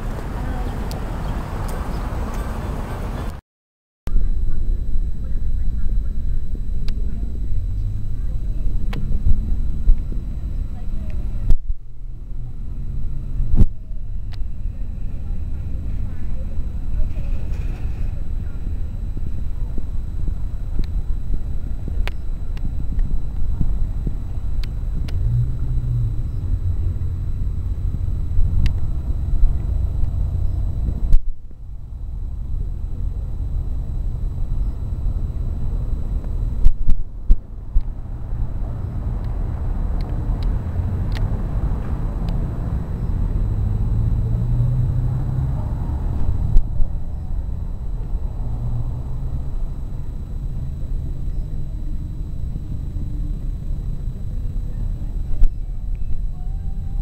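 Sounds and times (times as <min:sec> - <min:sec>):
street traffic rumble: 0:00.0 - 0:03.4, 0:04.1 - 0:57.0.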